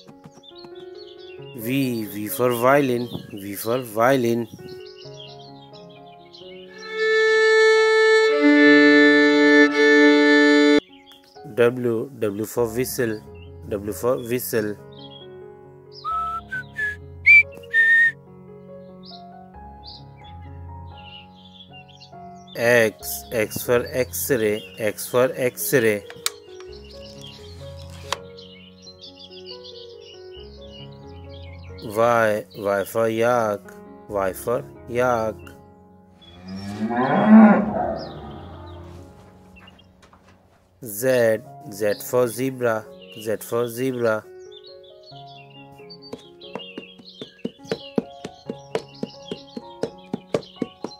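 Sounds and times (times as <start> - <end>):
soft background music: 0.0 - 50.9
whistle toots: 16.0 - 18.2
cow mooing: 36.3 - 39.1.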